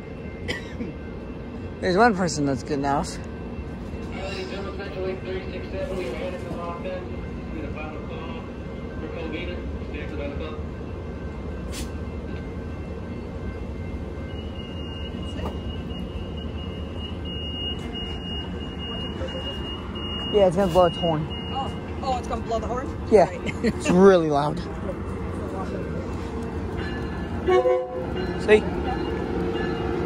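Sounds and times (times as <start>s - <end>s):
train rumbling at platform: 0.0s - 30.0s
high thin warning tone: 10.9s - 22.9s.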